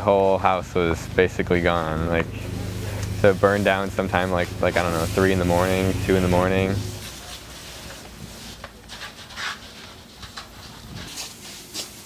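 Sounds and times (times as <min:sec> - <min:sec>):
steady hiss: 0:00.0 - 0:09.6
fire crackling and popping: 0:00.8 - 0:09.2.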